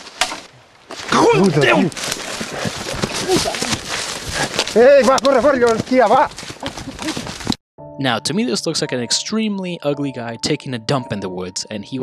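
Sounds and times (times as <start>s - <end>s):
crunching footsteps through brush: 0.0s - 7.6s.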